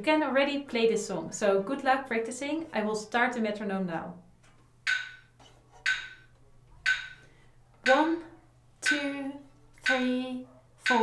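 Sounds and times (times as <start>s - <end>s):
metronome ticking: 4.8s - 11.0s
woman counting aloud: 7.9s - 11.0s.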